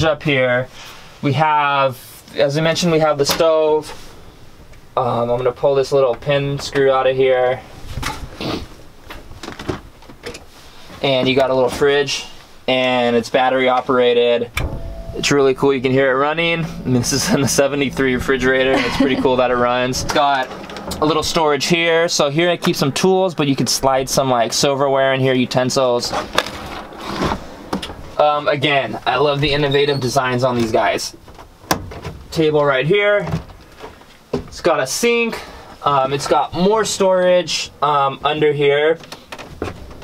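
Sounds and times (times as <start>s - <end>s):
sharp knock: 14.6s - 21.6s.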